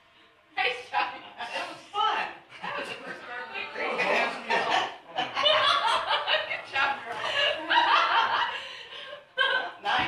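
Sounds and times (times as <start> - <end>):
people talking: 0.6 - 8.5, 9.4 - 10.0
people laughing: 2.5 - 10.0.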